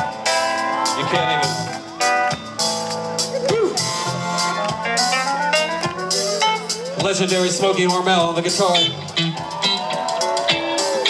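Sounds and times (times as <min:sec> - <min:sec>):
keyboard solo: 0:00.0 - 0:11.0
live band music through pa: 0:00.0 - 0:11.0.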